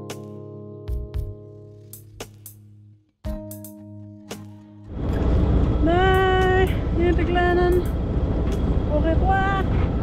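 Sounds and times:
diesel engine rumble: 4.9s - 10.0s.

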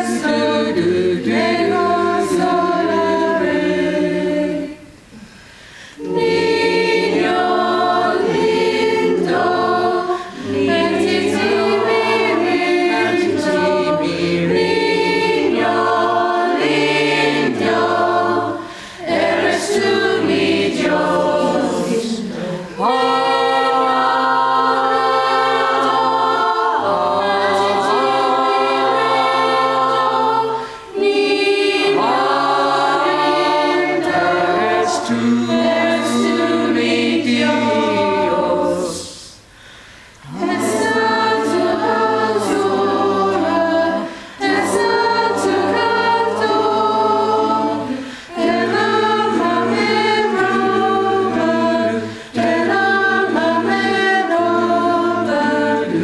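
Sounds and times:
mixed choir singing a carol: 0.0s - 56.0s.

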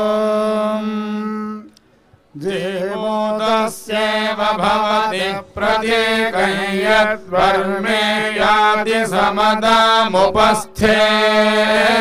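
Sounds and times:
mantras chanted: 0.0s - 12.0s.

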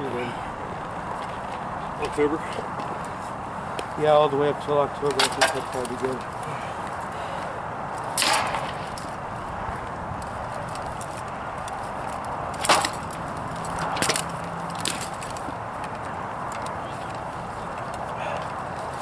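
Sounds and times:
swords striking shields and armor: 8.2s - 8.8s.

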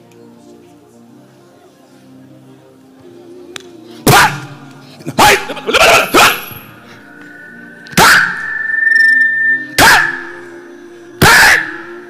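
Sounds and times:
soft background music: 0.0s - 12.0s
high ringing tone: 6.4s - 11.2s
amplified shouts: 7.8s - 8.7s, 9.5s - 10.5s, 11.2s - 11.9s.

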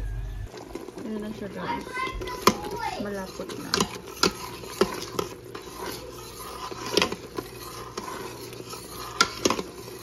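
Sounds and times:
metal spoon stirring in pot: 0.5s - 10.0s.

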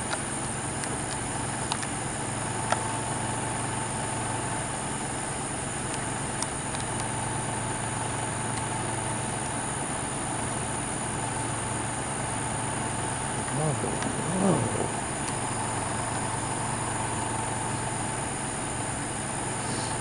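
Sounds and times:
motor humming with whine: 0.0s - 20.0s.

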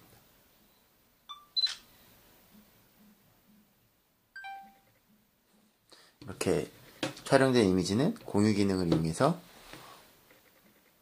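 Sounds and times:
electronic two-note chime: 4.4s - 4.8s.

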